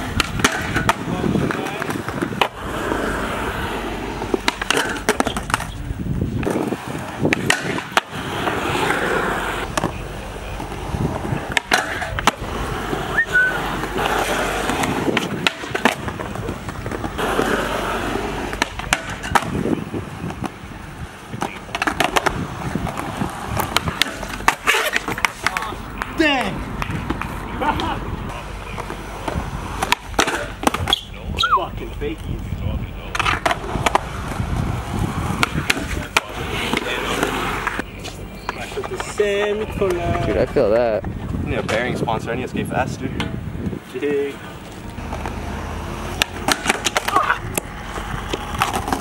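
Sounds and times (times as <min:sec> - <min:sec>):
skateboard clacks: 0:00.0 - 0:31.2, 0:32.0 - 0:42.0, 0:44.7 - 0:49.0
skateboard wheels rolling on concrete: 0:00.0 - 0:49.0.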